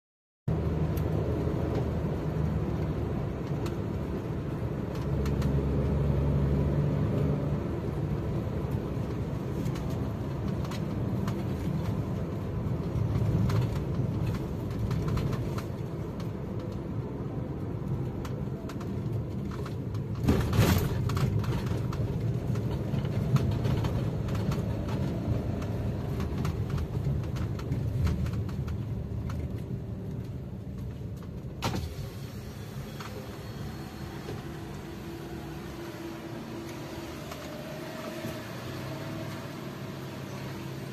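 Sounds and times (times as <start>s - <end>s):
car engine and road rumble: 0.5s - 40.9s.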